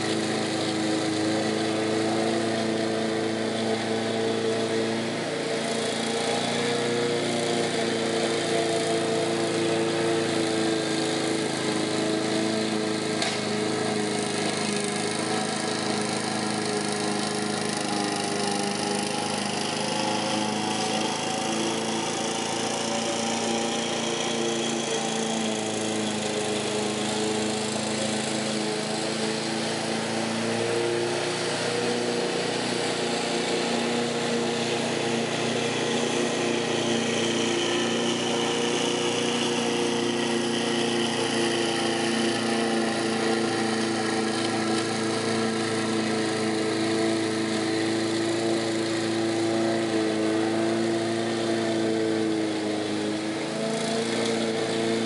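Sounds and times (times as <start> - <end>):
lawn mower engine cutting grass: 0.0 - 55.0.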